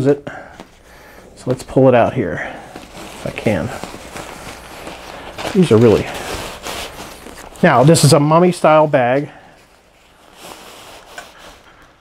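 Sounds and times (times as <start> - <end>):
sleeping bag fabric rustling: 0.5 - 12.0.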